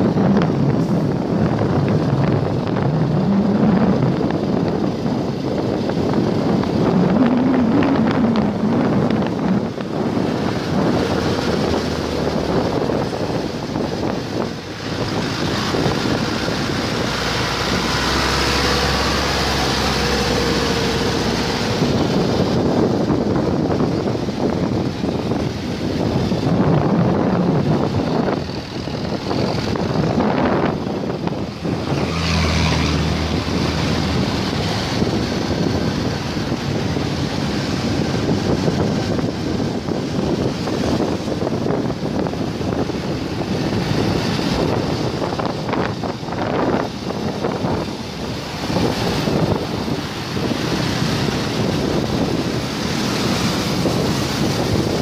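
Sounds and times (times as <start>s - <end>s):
city road traffic: 0.0s - 55.0s
deep engine hums: 0.0s - 55.0s
wind on microphone: 0.0s - 55.0s.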